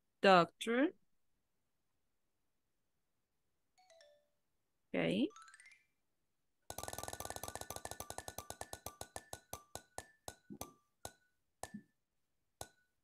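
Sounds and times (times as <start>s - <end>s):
spinning wheel ticking: 6.7s - 11.8s.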